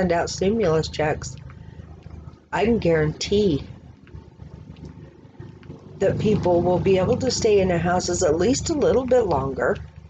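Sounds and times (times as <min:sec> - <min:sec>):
faint low rumbling: 0:00.0 - 0:10.0.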